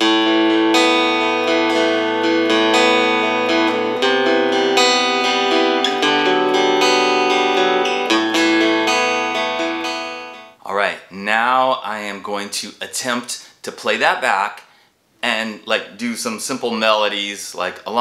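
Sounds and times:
acoustic guitar chords ringing: 0.0 - 10.6.

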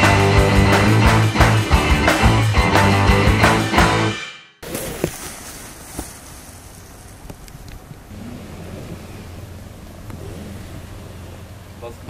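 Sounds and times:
steady low hum: 5.3 - 12.0
wind buffeting microphone: 5.7 - 11.5.

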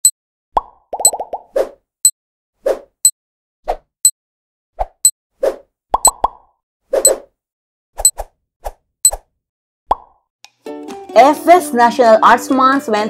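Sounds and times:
short pops and clicks: 0.0 - 1.5, 6.0 - 6.5.

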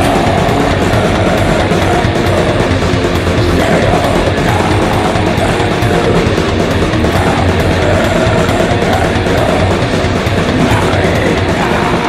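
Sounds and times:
distorted electric guitar: 0.0 - 12.0
growled vocal: 0.0 - 12.0
programmed drums: 0.0 - 12.0.

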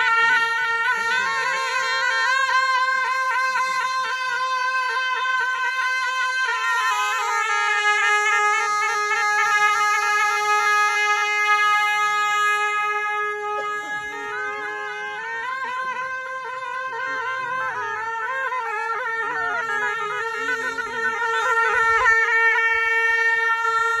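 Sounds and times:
shawm melody: 0.0 - 24.0.

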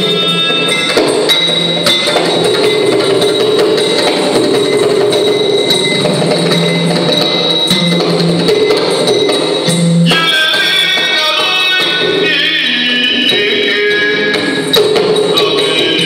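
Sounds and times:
ringing metallic time-keeping: 0.0 - 10.4
barrel drum played quickly: 0.0 - 16.0.

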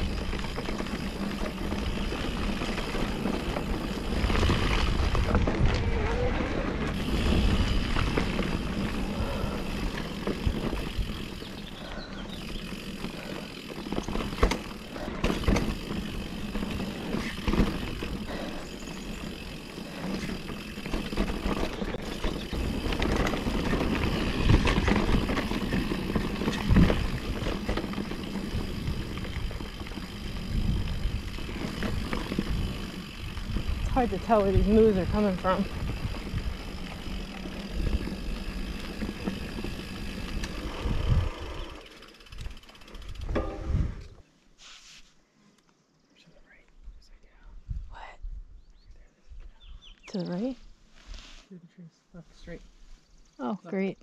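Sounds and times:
wind rumbling on microphone: 0.0 - 44.2, 46.8 - 49.9
bike tyres on dirt: 0.0 - 45.3
bike knocks and rattles: 12.3 - 40.8, 42.2 - 44.2.

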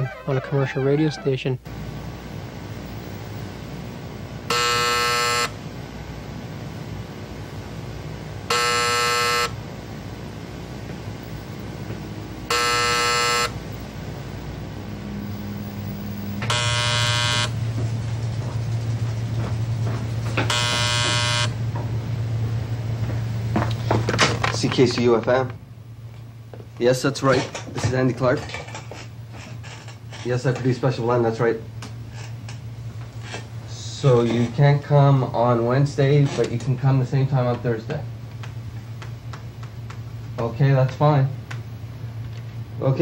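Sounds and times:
telephone ringing: 4.5 - 5.6, 8.5 - 9.6, 12.5 - 13.6, 16.4 - 17.6, 20.4 - 21.6
low hum: 13.5 - 23.7.

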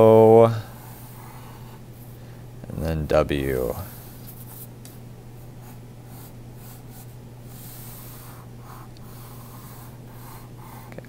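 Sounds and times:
steady low hum: 0.0 - 11.0
pencil scratching on paper: 5.6 - 11.0.

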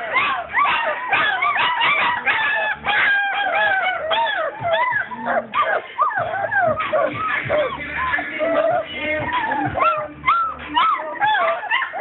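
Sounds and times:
puppy yelping and whining: 0.0 - 12.0.

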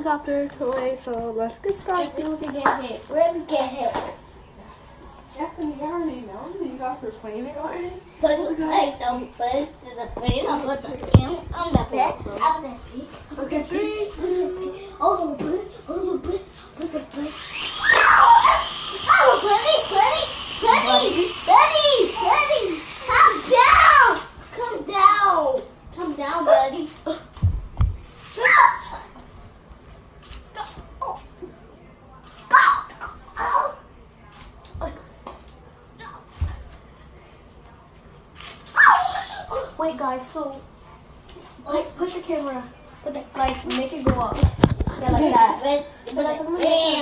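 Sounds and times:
children shouting and shrieking: 17.1 - 25.6, 28.3 - 29.2, 32.4 - 33.8, 38.7 - 39.8
child crying: 17.8 - 20.1.

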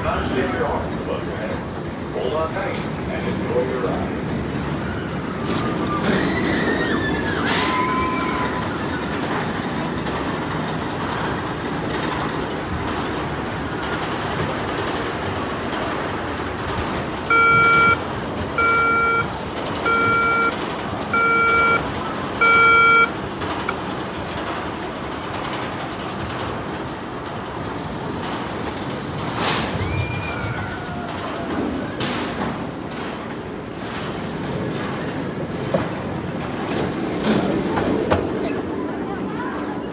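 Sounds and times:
roller coaster train rumble: 0.0 - 39.9
riders screaming: 4.9 - 9.1, 29.7 - 31.4
backup alarm beeps: 17.3 - 23.2.

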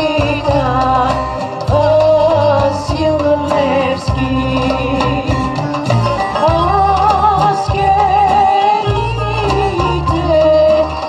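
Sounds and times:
instrumental accompaniment with bass: 0.0 - 11.0
woman singing into a microphone: 0.0 - 11.0.

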